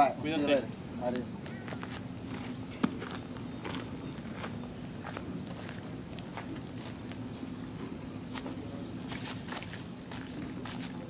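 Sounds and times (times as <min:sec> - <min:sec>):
footsteps on gravel: 0:01.7 - 0:11.0.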